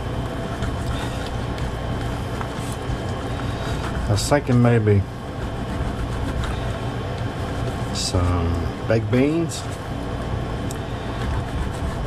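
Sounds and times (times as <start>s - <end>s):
appliance motor humming: 0.0s - 12.0s.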